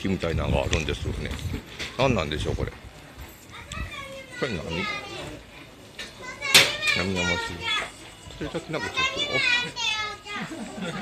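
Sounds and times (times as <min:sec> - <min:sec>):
child's voice: 0:03.5 - 0:11.0.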